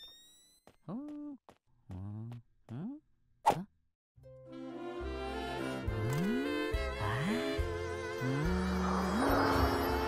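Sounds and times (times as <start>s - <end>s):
background music: 4.2s - 10.0s.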